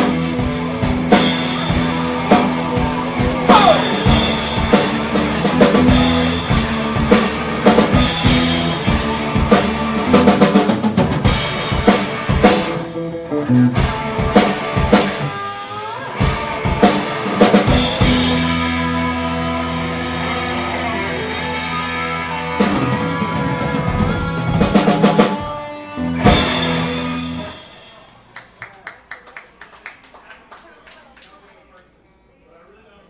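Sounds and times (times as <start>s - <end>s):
rock band playing: 0.0s - 28.5s
audience clapping: 28.1s - 32.0s.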